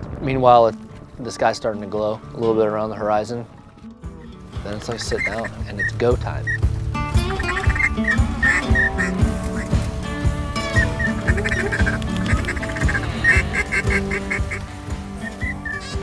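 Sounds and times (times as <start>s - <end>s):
background music with held notes: 0.1s - 16.0s
ducks quacking: 4.2s - 16.0s.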